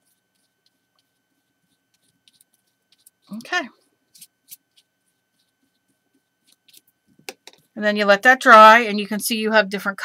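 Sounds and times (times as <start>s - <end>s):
paintbrush swishes on paper: 0.0s - 3.4s, 4.1s - 6.9s.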